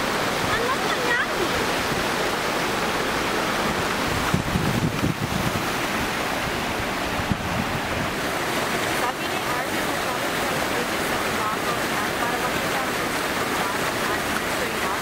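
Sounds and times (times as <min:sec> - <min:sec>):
fountain water splashing: 0:00.0 - 0:15.0.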